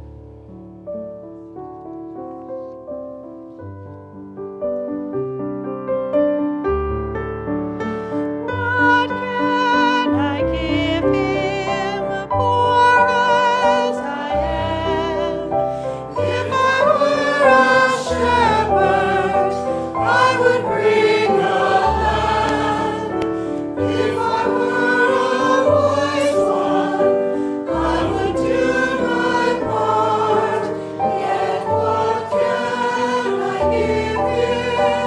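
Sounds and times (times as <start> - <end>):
sustained keyboard accompaniment: 0.0 - 35.0
choir singing a hymn: 8.8 - 35.0.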